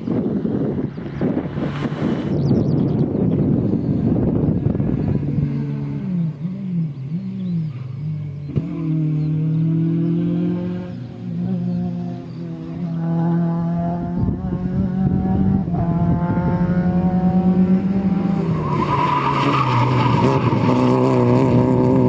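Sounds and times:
car engine revving past: 0:04.7 - 0:22.0.

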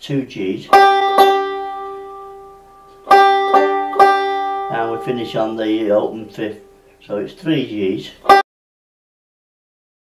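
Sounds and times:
banjo notes plucked: 0:00.6 - 0:06.9, 0:08.0 - 0:08.4
man's voice: 0:04.7 - 0:08.2.

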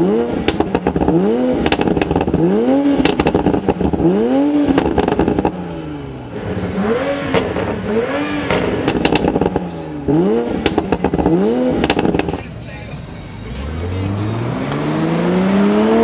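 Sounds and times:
car engine revving: 0:00.0 - 0:16.0
exhaust crackling clicks: 0:00.4 - 0:05.6, 0:08.4 - 0:09.8, 0:10.5 - 0:12.5.

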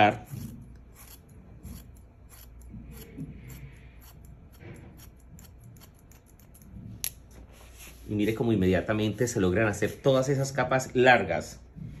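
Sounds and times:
scissors snipping hair: 0:00.0 - 0:07.2.

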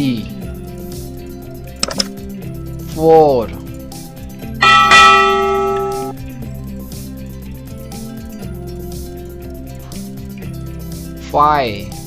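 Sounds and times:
bell-like chime: 0:04.6 - 0:06.1.

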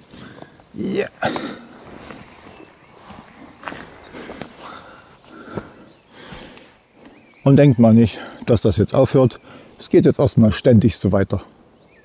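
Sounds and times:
scuffing steps on forest floor: 0:00.0 - 0:07.2
clothing and backpack rustling: 0:00.0 - 0:07.4.

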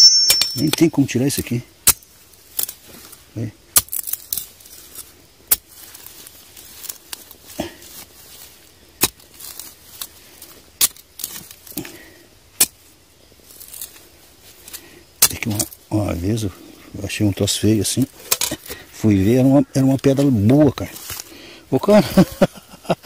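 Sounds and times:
machete knocking and scraping stone: 0:00.0 - 0:02.8, 0:03.7 - 0:04.5, 0:09.0 - 0:09.6, 0:12.6 - 0:12.8.

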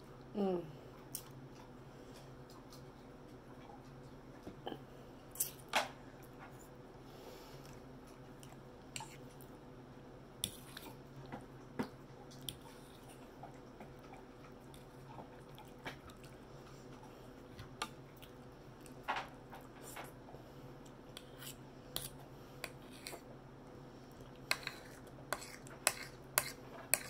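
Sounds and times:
faint steady hum: 0:00.0 - 0:27.0
person chewing food: 0:07.6 - 0:09.6, 0:10.4 - 0:23.3.

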